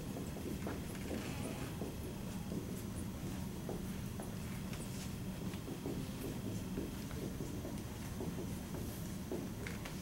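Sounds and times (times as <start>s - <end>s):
marker writing on whiteboard: 0.2s - 10.0s.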